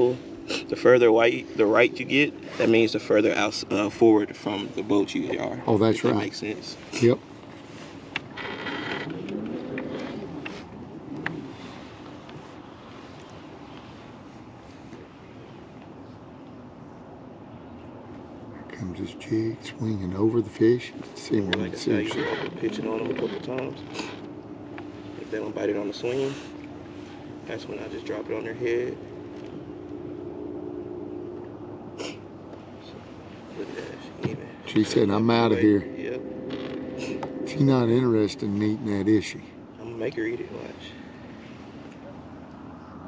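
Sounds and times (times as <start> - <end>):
electric trolling motor whine: 7.4 - 12.8, 21.1 - 39.7.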